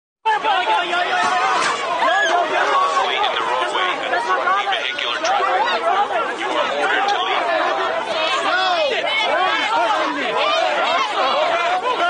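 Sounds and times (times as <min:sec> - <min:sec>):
crowd chatter: 0:00.3 - 0:12.0.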